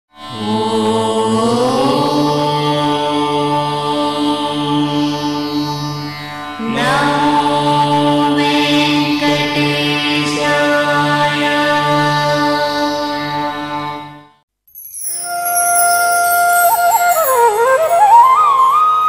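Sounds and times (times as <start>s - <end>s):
chanted tones over drone: 0.3s - 5.7s, 15.0s - 18.9s
bright shimmer: 14.7s - 18.6s.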